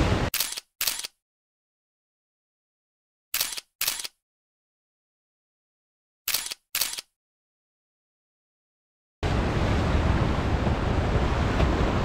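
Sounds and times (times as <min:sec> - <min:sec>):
camera shutter clicks: 0:00.4 - 0:01.2, 0:03.4 - 0:04.2, 0:06.3 - 0:07.1.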